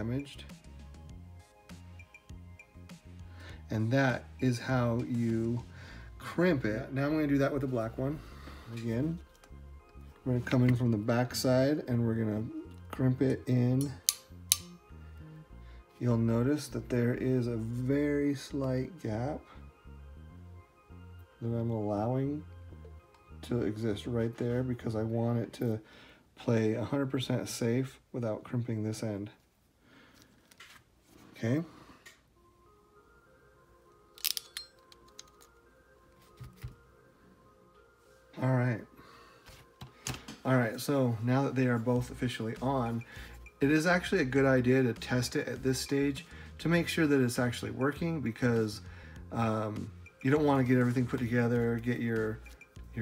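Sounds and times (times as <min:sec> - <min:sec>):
background music with bass line: 0:00.0 - 0:25.5, 0:39.6 - 0:53.0.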